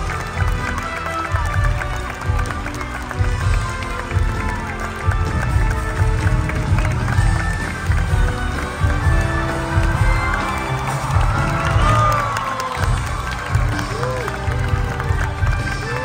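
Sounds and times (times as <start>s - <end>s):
theatre orchestra playing: 0.0s - 16.0s.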